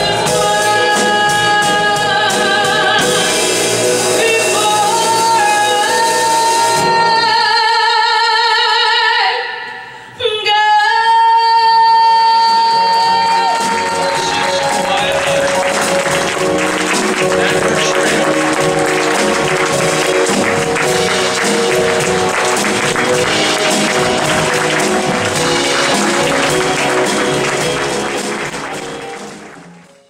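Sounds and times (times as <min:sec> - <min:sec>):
live jazz band playing: 0:00.0 - 0:07.9, 0:12.2 - 0:30.0
audience applauding: 0:12.9 - 0:30.0.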